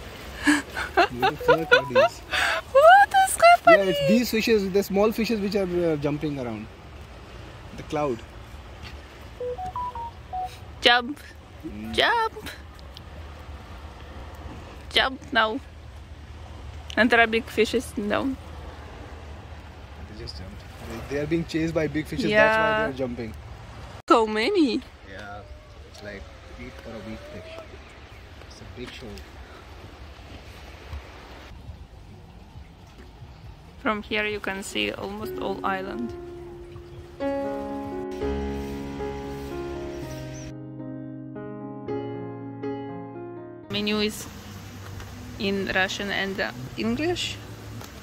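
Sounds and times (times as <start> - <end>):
faint wash of sea water: 0.0 - 40.5, 43.7 - 48.0
electronic beep tune: 1.4 - 2.1, 9.4 - 10.6.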